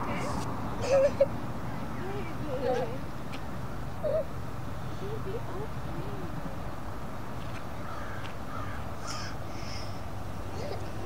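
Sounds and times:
low outdoor background noise: 0:00.0 - 0:11.0
short bird calls: 0:07.8 - 0:10.0.

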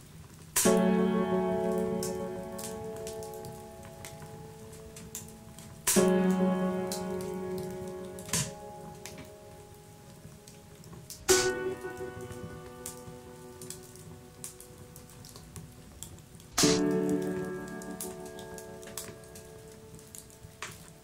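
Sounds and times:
crackle of small clicks: 0:00.0 - 0:21.0
loud struck chords: 0:11.3 - 0:12.0, 0:16.6 - 0:17.3
dark electronic music: 0:16.6 - 0:18.6.

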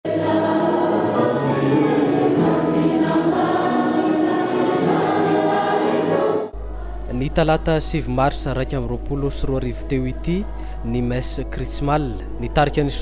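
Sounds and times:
choir singing a hymn: 0:00.1 - 0:13.0.

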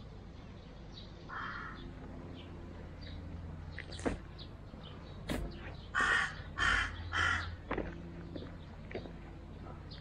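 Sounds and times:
crow cawing: 0:01.3 - 0:01.9, 0:05.9 - 0:07.7.

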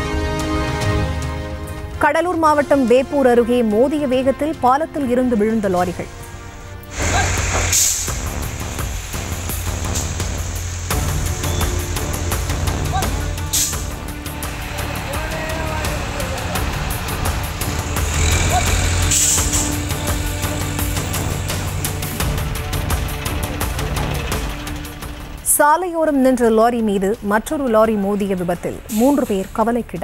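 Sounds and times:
background music: 0:00.0 - 0:30.0
heavy vehicles rumbling: 0:00.0 - 0:30.0
brief hisses: 0:06.9 - 0:08.8.

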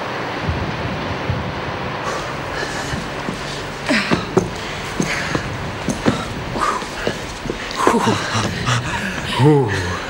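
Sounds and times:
light footsteps: 0:02.1 - 0:10.0
people panting: 0:02.1 - 0:10.0.

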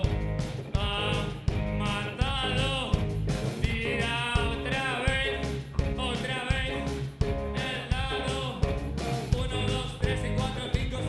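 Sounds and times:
man singing into microphone: 0:00.0 - 0:08.7, 0:09.3 - 0:11.0
live rock band playing: 0:00.0 - 0:11.0.

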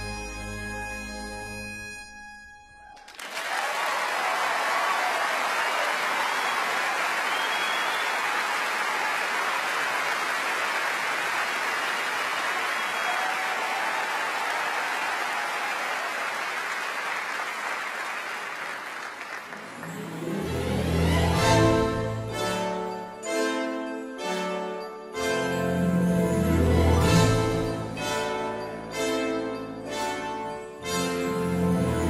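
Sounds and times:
orchestra brass and low instruments: 0:00.0 - 0:02.0, 0:19.6 - 0:32.0
audience applauding: 0:03.0 - 0:22.8.

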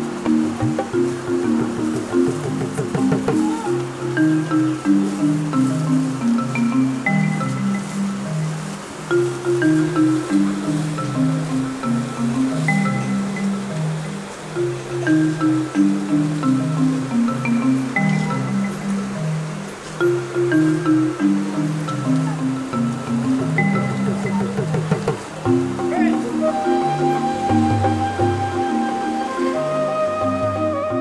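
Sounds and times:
melody of short stepped notes: 0:00.0 - 0:31.0.

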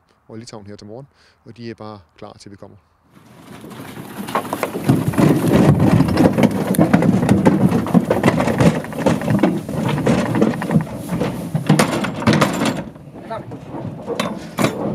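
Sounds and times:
hooves thumping in a truck: 0:03.2 - 0:14.9.

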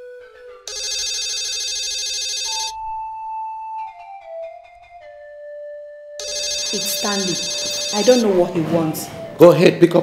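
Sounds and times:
phone ringing: 0:00.7 - 0:02.8, 0:06.2 - 0:08.5.

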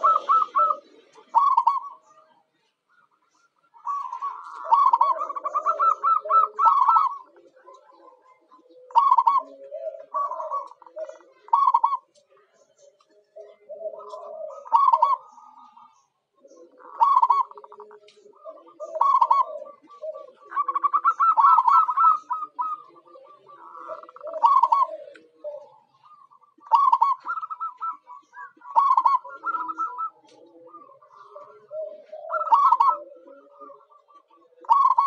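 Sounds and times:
doves cooing in trills: 0:00.0 - 0:35.0.

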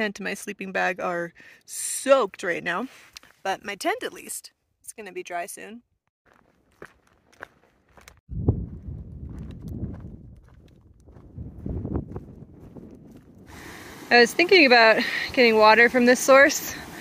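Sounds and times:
footsteps on dirt trail: 0:06.2 - 0:13.8
low rumble: 0:08.3 - 0:13.5
creek water running: 0:13.4 - 0:17.0.

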